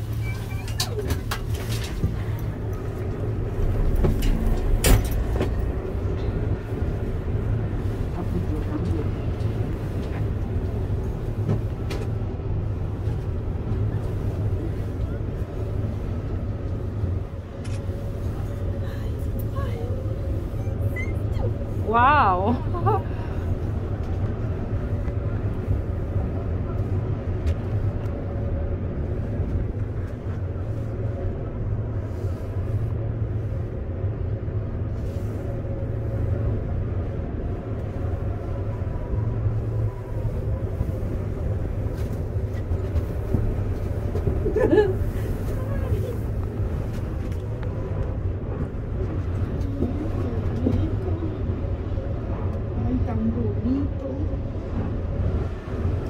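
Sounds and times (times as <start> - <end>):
cable car cabin rumble: 0.0 - 56.0
faint passenger voices: 0.0 - 56.0.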